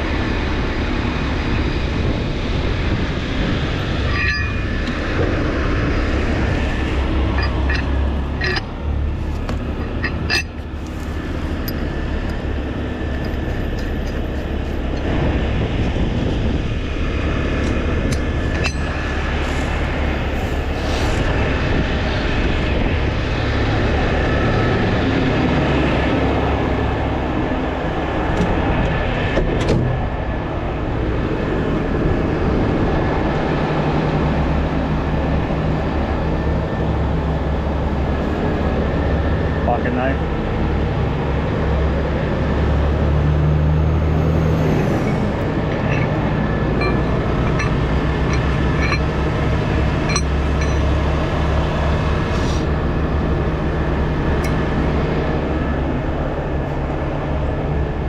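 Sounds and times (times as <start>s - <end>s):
diesel truck engine running: 0.0s - 29.4s, 30.0s - 58.0s
highway traffic passing: 0.0s - 58.0s
sharp metal clinks: 4.0s - 5.2s, 7.3s - 8.8s, 9.8s - 11.0s, 18.2s - 19.2s, 45.0s - 49.2s, 50.1s - 51.0s.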